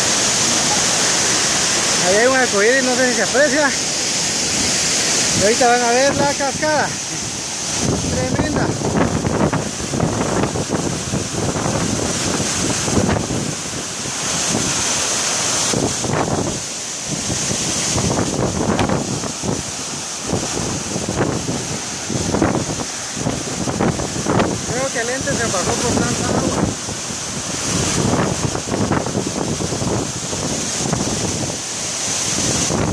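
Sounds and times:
waterfall rushing: 0.0 - 32.9
wind buffeting microphone: 4.4 - 32.9.

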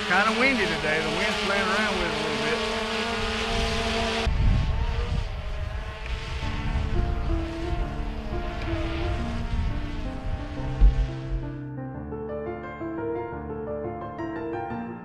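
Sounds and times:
drone propellers whining: 0.0 - 11.7
low rumble: 3.2 - 11.7
gentle piano music: 6.6 - 15.0.

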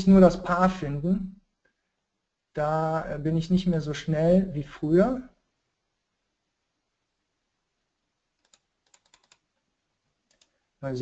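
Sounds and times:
keyboard and mouse clicks: 8.4 - 9.6, 10.2 - 10.6.

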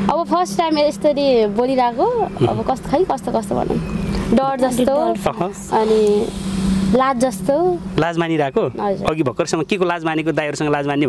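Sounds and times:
woman speaking: 0.0 - 6.3, 6.9 - 7.8
steady low hum: 0.0 - 11.0.

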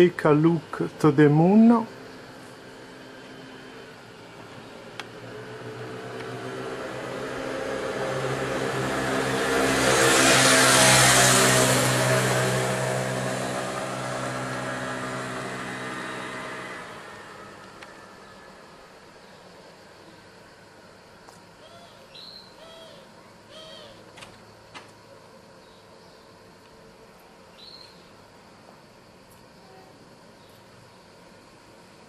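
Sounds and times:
motor vehicle passing by: 1.1 - 18.7.

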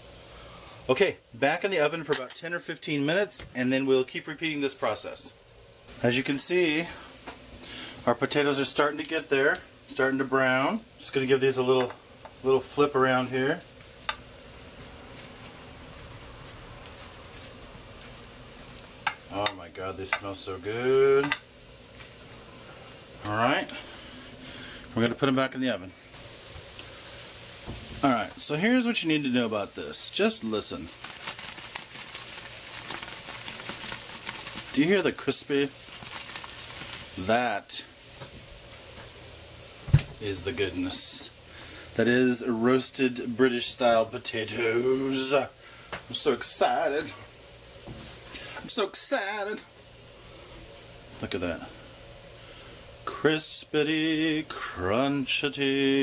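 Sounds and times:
potatoes sizzling in fat: 0.0 - 56.0
dull thump: 39.9 - 40.2.

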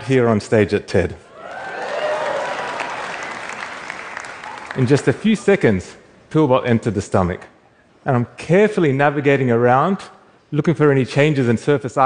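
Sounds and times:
people cheering: 1.3 - 5.1
audience applauding: 1.4 - 5.0.

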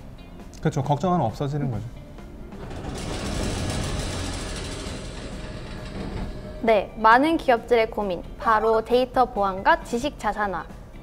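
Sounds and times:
faint background music: 0.0 - 4.8, 5.6 - 11.0.

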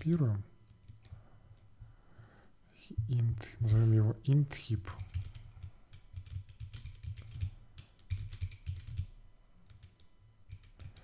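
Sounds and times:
computer keyboard typing: 0.7 - 1.2, 4.9 - 11.0.

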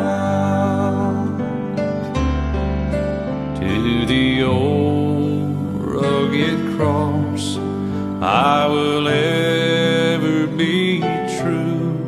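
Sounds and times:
hymn singing with accompaniment: 0.0 - 1.5, 3.6 - 12.0.

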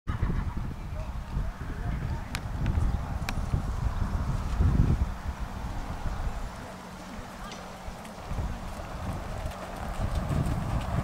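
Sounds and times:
low uneven rumble: 0.1 - 11.0
pony hoofbeats: 7.4 - 11.0.

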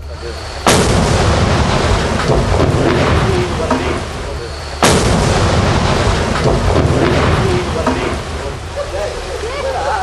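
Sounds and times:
floodwater rushing: 0.0 - 10.0.

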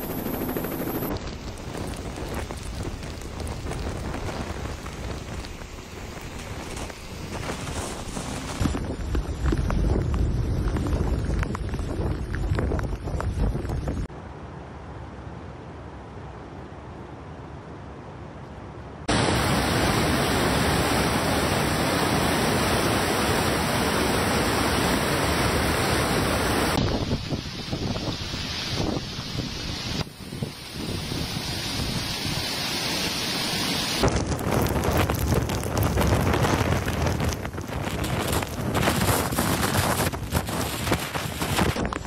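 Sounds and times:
heavy wind on microphone: 0.0 - 14.1, 19.0 - 42.0
rain: 1.1 - 14.1, 19.0 - 42.0
surf breaking over rocks: 19.1 - 27.8.

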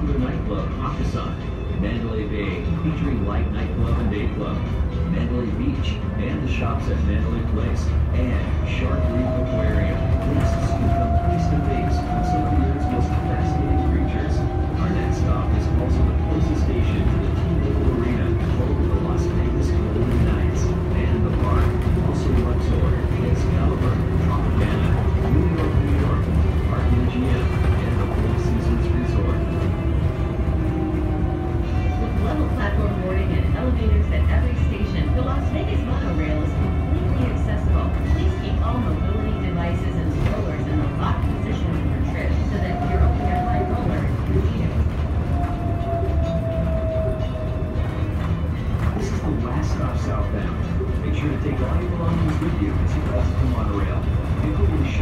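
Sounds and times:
train cabin rumble: 0.0 - 55.0.

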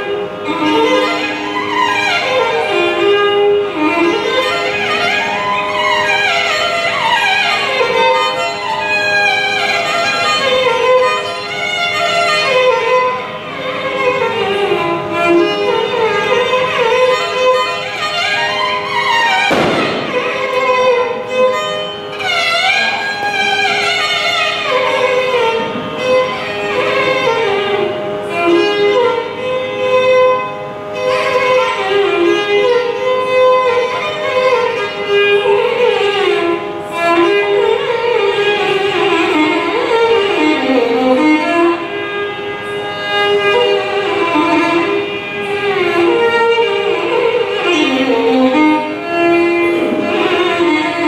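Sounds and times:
violin sliding melody: 0.0 - 51.0.

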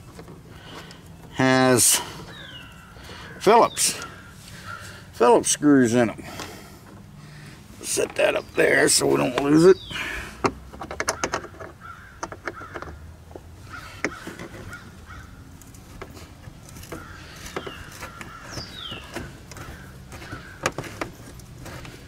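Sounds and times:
crow cawing: 4.0 - 5.1, 11.1 - 13.0, 13.7 - 15.5, 16.9 - 20.9
plastic liner clicks and knocks: 10.4 - 13.0.

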